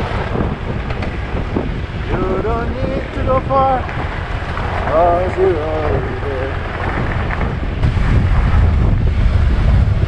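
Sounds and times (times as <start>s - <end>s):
motorcycle engine rumble: 0.0s - 10.0s
wind buffeting microphone: 0.0s - 10.0s.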